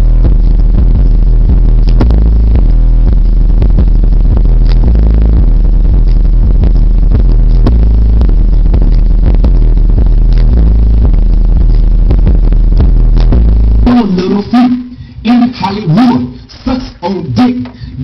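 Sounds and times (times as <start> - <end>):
distorted subwoofer bass: 0.0 - 18.0.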